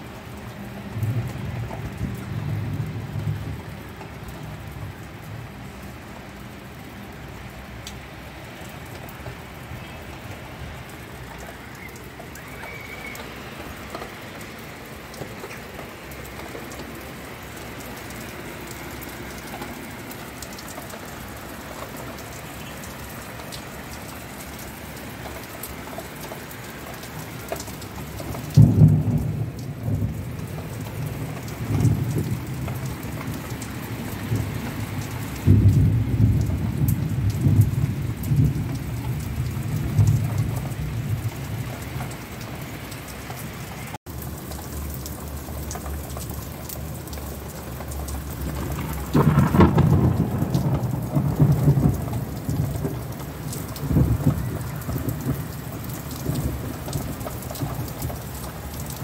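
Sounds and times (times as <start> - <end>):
heavy rain pouring: 0.0 - 59.0
thunder rumbling: 0.6 - 5.6, 9.6 - 42.8, 44.2 - 59.0.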